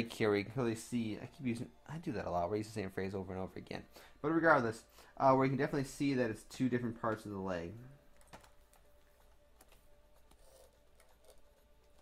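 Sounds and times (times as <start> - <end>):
keyboard and mouse clicks: 8.1 - 12.0.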